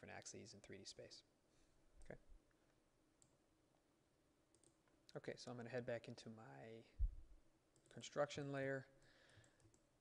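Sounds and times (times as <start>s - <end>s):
computer mouse click: 4.5s - 4.8s, 9.4s - 9.9s.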